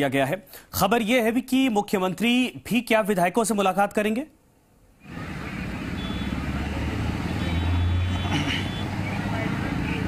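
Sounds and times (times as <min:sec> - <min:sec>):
street ambience: 0:04.4 - 0:10.0.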